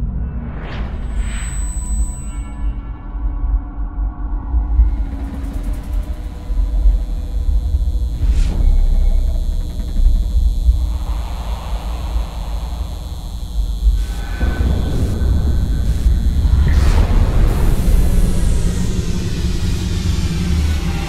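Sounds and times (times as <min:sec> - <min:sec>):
deep bass rumble: 0:03.8 - 0:21.0
swells of noise: 0:04.8 - 0:21.0.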